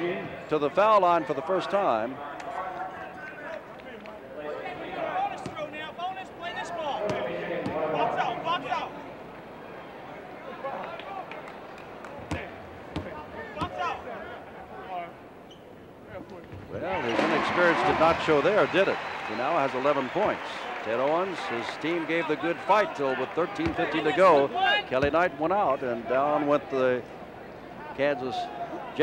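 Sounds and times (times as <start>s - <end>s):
indistinct crowd voices: 0.0s - 29.0s
basketball bouncing on hardwood: 12.2s - 13.8s.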